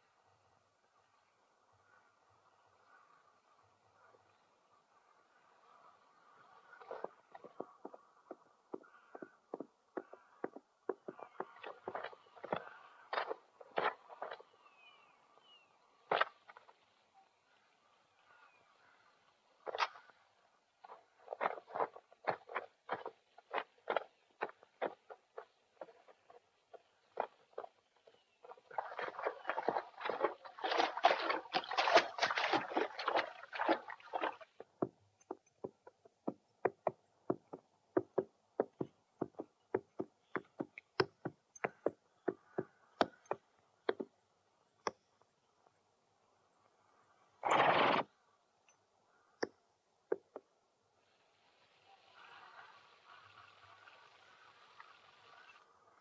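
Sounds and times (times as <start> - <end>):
hoof clopping: 6.8 - 14.5, 20.8 - 44.1.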